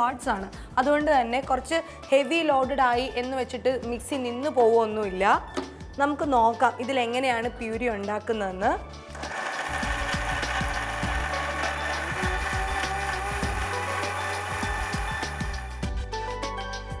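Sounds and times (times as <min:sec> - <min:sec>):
mixer grinder motor whine: 0:09.1 - 0:15.8.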